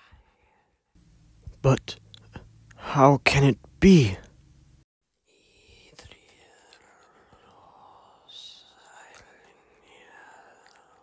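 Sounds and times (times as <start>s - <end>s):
person whispering: 5.3s - 11.0s.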